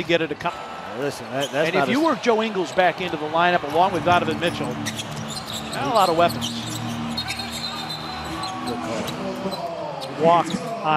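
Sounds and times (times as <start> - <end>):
murmur of players' voices: 0.0 - 10.9.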